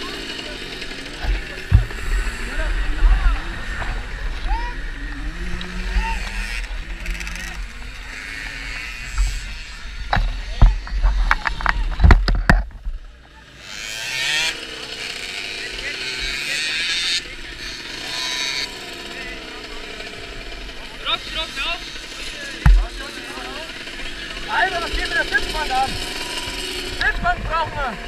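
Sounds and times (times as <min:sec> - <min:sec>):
voices: 0:00.0 - 0:12.3, 0:13.0 - 0:28.0
distant moped engines: 0:00.0 - 0:28.0
sharp knocks: 0:22.6 - 0:22.9.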